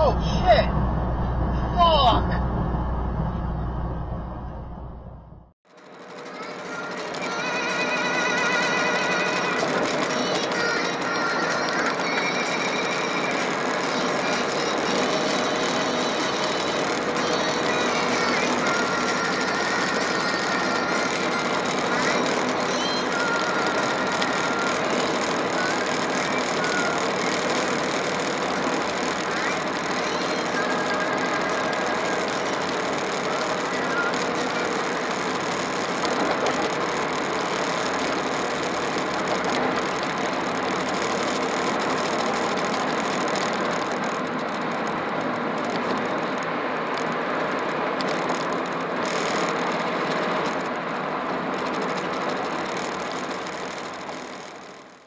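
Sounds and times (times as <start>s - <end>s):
truck road and engine noise: 0.0s - 55.0s.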